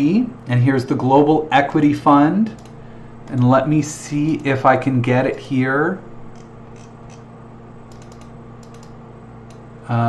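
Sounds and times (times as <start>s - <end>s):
low electrical hum: 0.0s - 10.0s
light quick computer clicks: 2.5s - 3.5s, 7.9s - 9.6s.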